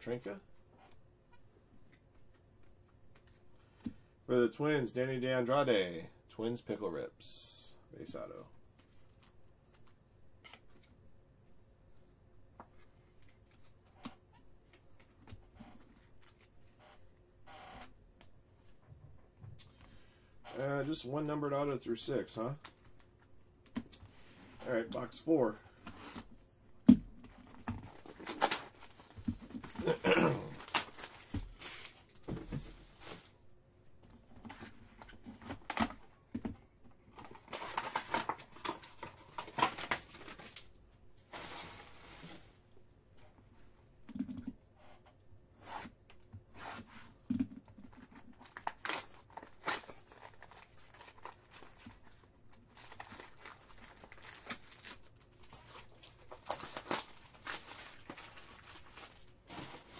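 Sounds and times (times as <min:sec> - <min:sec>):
card packs tearing and crinkling: 0:27.8 - 0:32.1, 0:37.2 - 0:40.7, 0:48.0 - 0:59.9
person clearing throat: 0:29.8 - 0:30.6.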